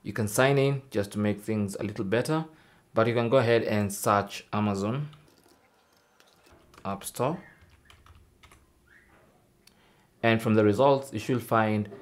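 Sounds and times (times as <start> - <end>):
computer keyboard keystrokes: 6.2 - 7.0, 7.6 - 8.6.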